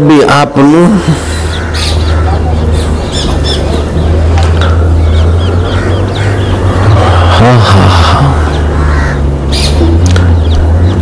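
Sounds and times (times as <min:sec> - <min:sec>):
birds chirping: 0:00.0 - 0:11.0
steady low hum: 0:00.0 - 0:11.0.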